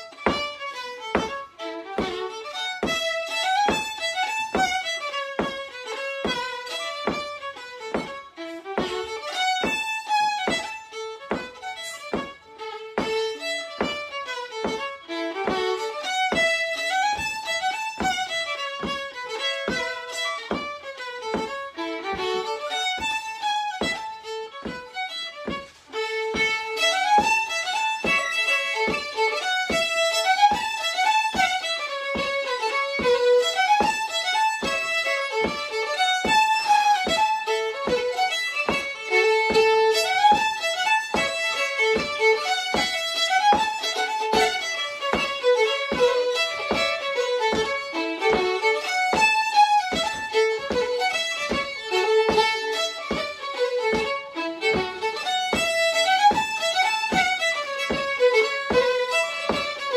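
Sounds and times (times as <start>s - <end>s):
fiddle tune: 0.0s - 59.9s
sharp rhythmic taps: 0.0s - 59.9s.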